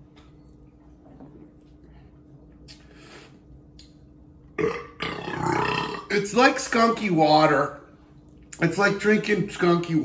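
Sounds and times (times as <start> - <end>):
man belching loudly: 4.6 - 6.3.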